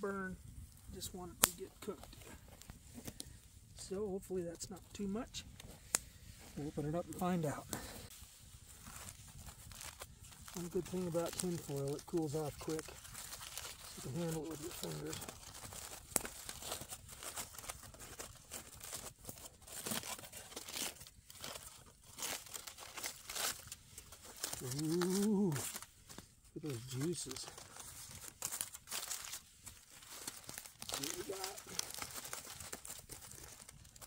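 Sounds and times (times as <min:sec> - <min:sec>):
aluminium foil crinkling: 0:06.6 - 0:34.0.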